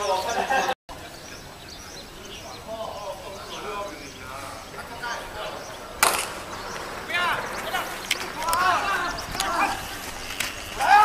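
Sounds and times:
voices shouting: 2.2s - 11.0s
bat hitting ball: 6.0s - 6.5s.

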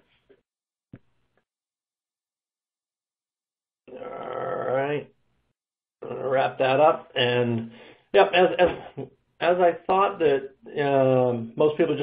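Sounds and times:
man's drawn-out wordless vocal: 3.9s - 5.0s, 6.0s - 6.6s.

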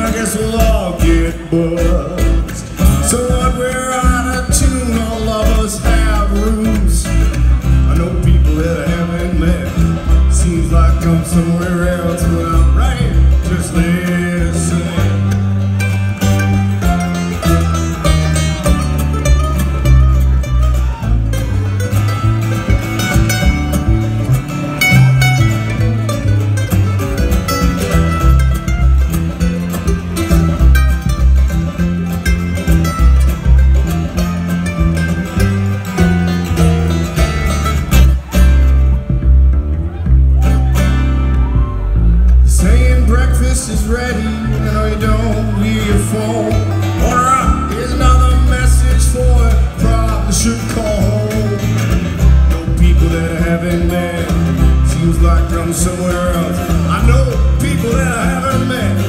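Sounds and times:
acoustic guitar: 0.0s - 59.0s
mandolin: 0.0s - 59.0s
upright bass: 0.0s - 59.0s.

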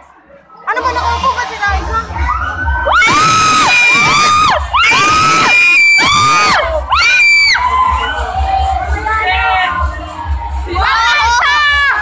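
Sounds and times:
crowd shouting and cheering: 0.0s - 12.0s
loud dance music: 0.0s - 12.0s.

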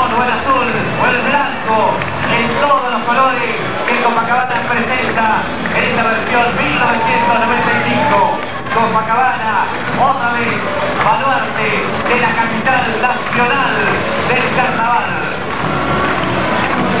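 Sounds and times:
person talking: 0.0s - 15.4s
low background din: 0.0s - 17.0s.

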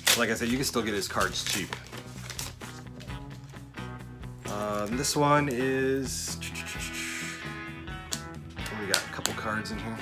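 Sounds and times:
background music with held notes: 0.0s - 10.0s.

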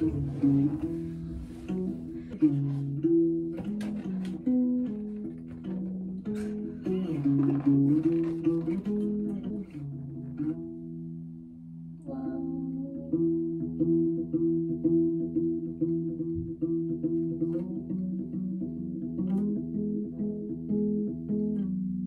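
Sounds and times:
acoustic guitar picking: 0.0s - 22.0s.

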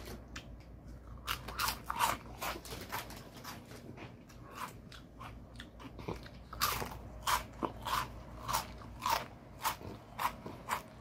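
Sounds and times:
person chewing crunchy snack: 1.0s - 11.0s.

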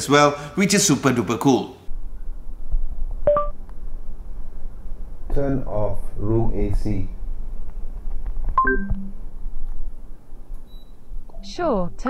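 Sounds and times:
steady low hum: 1.8s - 12.0s.

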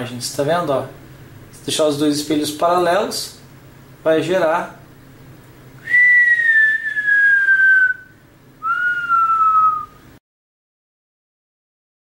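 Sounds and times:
person whistling sliding notes: 5.8s - 10.0s.

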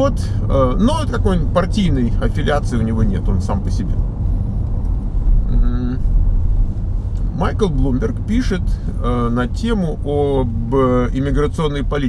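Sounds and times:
road and engine rumble: 0.0s - 12.0s
person vocalizing uh: 5.4s - 6.0s.

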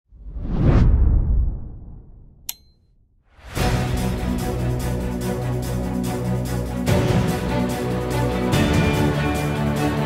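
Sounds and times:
deep rumble: 0.2s - 2.4s.

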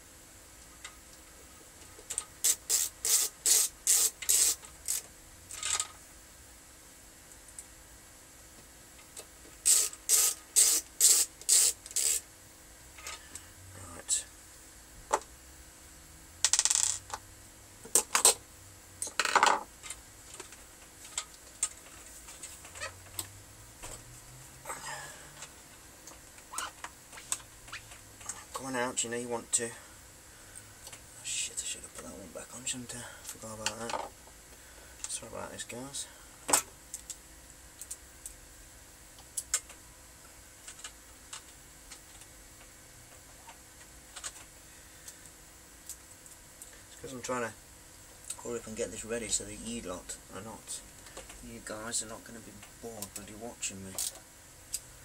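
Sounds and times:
screwdriver scraping in screw: 2.4s - 5.0s, 9.6s - 12.2s
small clicks from handling parts: 36.5s - 37.2s, 37.8s - 38.4s, 53.9s - 54.9s.

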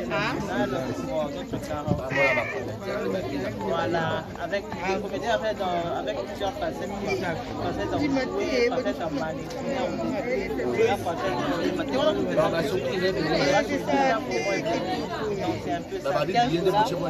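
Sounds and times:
other voices: 0.0s - 17.0s.

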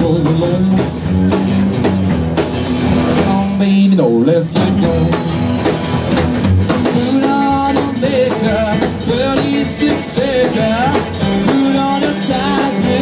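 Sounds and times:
drums: 0.0s - 13.0s
electric guitar: 0.0s - 13.0s
upright double bass: 0.0s - 13.0s.

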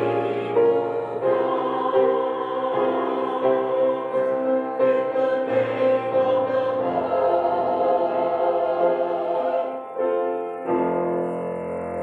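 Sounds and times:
church choir singing: 0.0s - 11.7s.

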